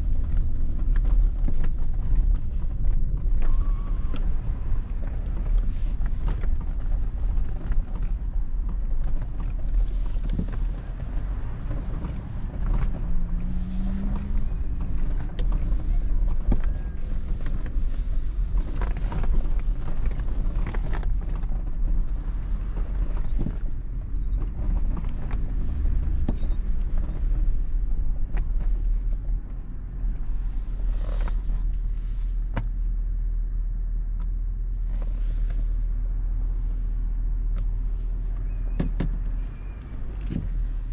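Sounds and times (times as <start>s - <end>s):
vehicle engine rumble in cabin: 0.0s - 40.9s.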